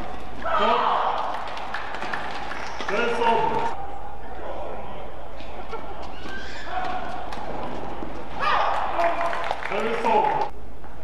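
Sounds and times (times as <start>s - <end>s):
sports hall background: 0.0s - 11.0s
shoe squeaks: 5.7s - 6.9s.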